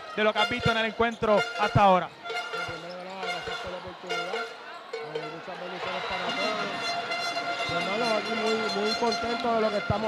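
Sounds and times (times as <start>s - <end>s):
crowd noise: 0.0s - 10.0s
held horn tones: 0.4s - 10.0s.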